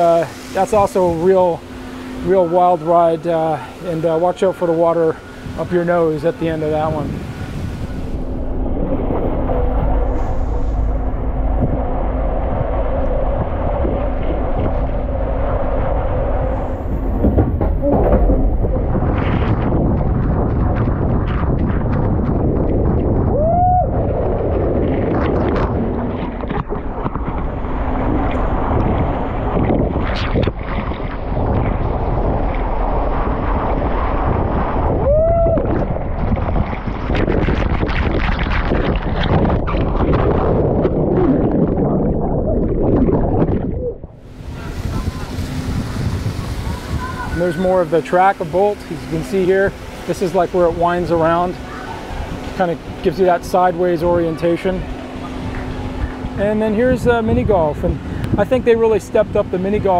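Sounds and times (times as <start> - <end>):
water rushing and splashing: 0.0 - 59.9
wind buffeting microphone: 0.0 - 59.9.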